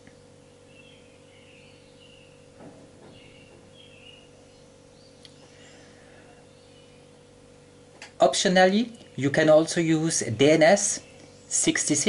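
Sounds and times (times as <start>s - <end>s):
faint bird chirps: 0.0s - 7.9s
low electrical hum: 0.0s - 12.0s.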